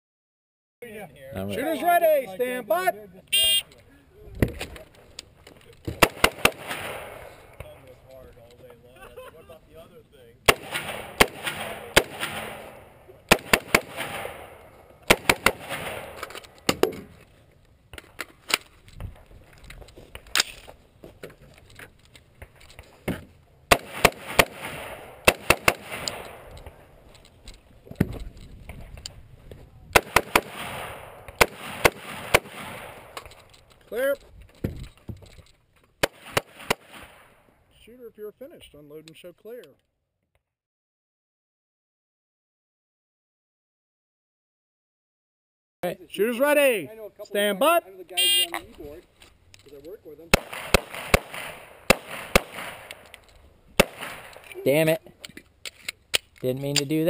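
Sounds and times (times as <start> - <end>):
rifle shots: 5.9 - 7.8, 10.4 - 16.9, 23.7 - 26.9, 29.9 - 33.4, 36.0 - 37.4, 50.3 - 54.6.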